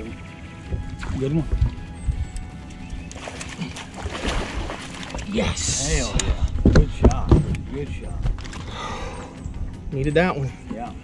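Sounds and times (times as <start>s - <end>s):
fish splashing out of water: 3.2s - 5.4s.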